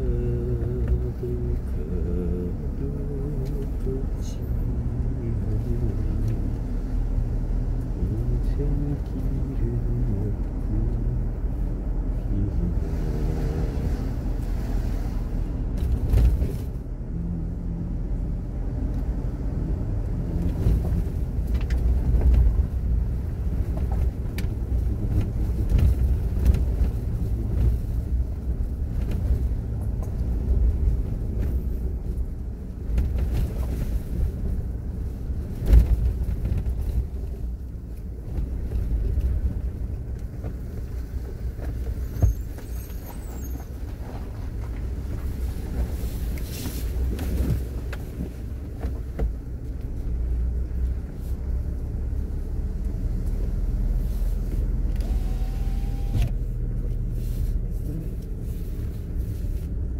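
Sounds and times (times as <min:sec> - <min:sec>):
knocks and bumps from road: 0:00.0 - 0:55.2
car engine and road rumble: 0:00.0 - 0:59.9.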